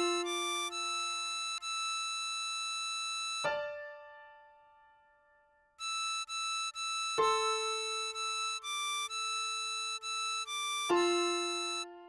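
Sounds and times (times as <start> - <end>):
harmonica notes: 0.0 - 3.6, 5.8 - 12.0.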